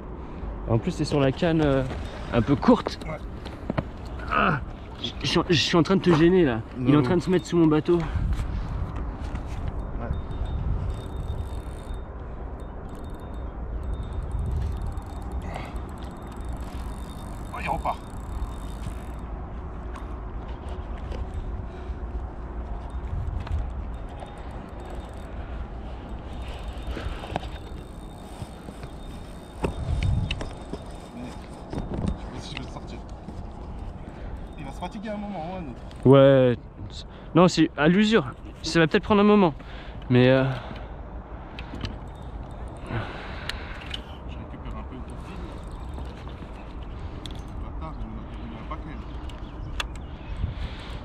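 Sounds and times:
wind rumbling on microphone: 6.5s - 37.0s, 41.0s - 51.0s.

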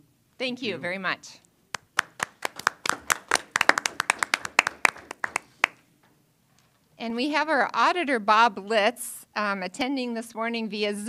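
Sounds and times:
people clapping: 1.7s - 5.9s.

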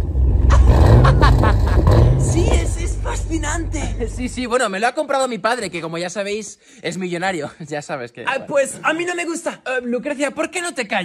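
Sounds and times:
car engine revving: 0.0s - 4.5s.

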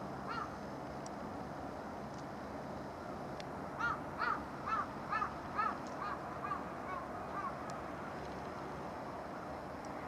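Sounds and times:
crow cawing: 0.3s - 0.5s, 3.8s - 7.6s.

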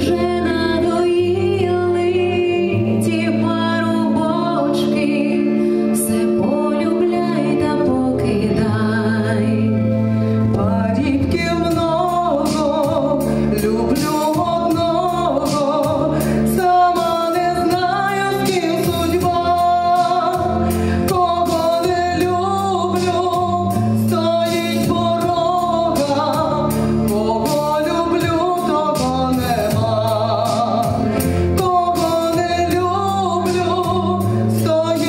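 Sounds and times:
backing track with bass and beat: 0.0s - 35.0s
women singing into microphones: 0.0s - 35.0s.

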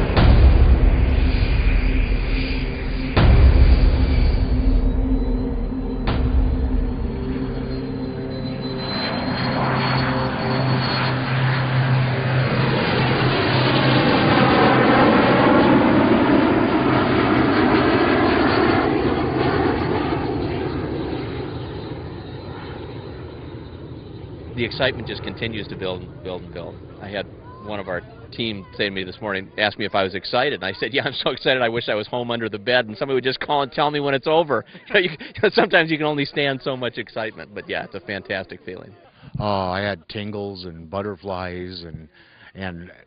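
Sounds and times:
jet passing overhead whoosh: 0.0s - 29.9s
jet engine high whine and rush: 0.0s - 38.7s.

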